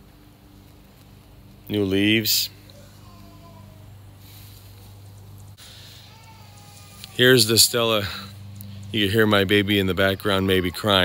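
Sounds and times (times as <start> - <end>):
steady low hum: 0.0 - 11.0
distant baby crying: 2.6 - 4.6, 5.6 - 9.4.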